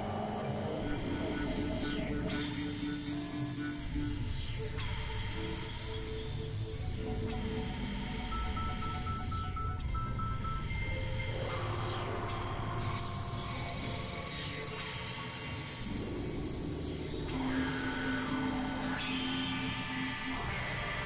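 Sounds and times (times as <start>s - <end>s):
experimental synthesizer music: 7.1s - 10.8s.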